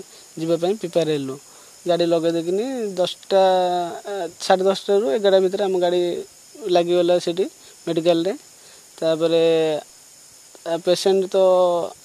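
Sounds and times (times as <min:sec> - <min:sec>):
man talking: 0:00.0 - 0:08.4, 0:09.0 - 0:09.8, 0:10.6 - 0:12.0.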